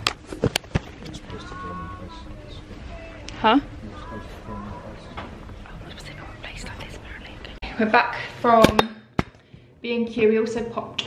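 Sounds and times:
woman speaking softly: 5.7s - 8.2s.

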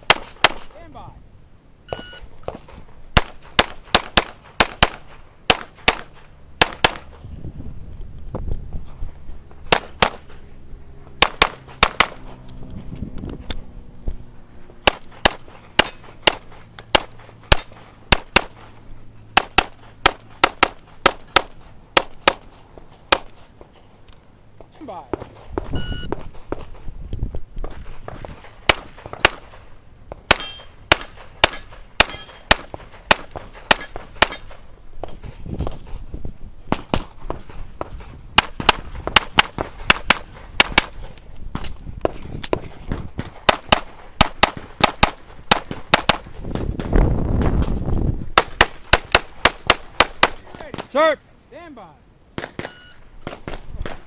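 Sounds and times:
pistol shots fired rapidly: 0.0s - 0.7s, 3.2s - 7.1s, 9.7s - 10.2s, 11.2s - 12.2s, 14.8s - 18.6s, 19.4s - 22.4s, 28.7s - 29.6s, 30.3s - 34.5s, 43.2s - 46.3s, 48.4s - 50.9s.

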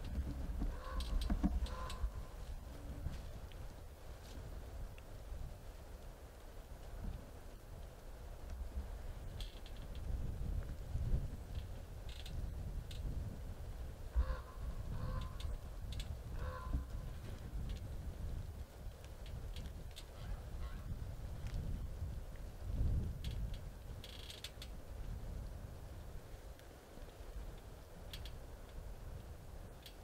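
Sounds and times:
light ticks and rustles: 0.0s - 30.0s.

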